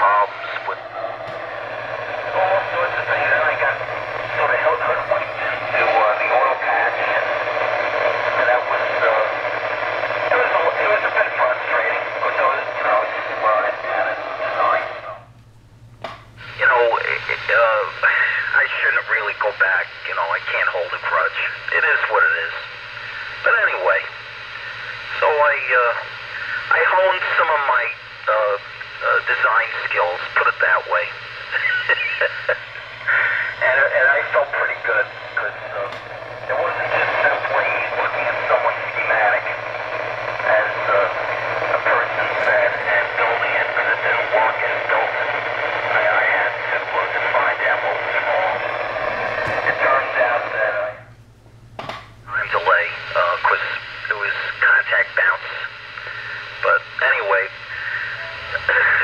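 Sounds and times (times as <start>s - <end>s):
person talking over radio: 0.0s - 15.2s, 16.4s - 51.1s, 52.3s - 59.0s
radio static hiss: 0.0s - 15.3s, 16.3s - 51.3s, 52.2s - 59.0s.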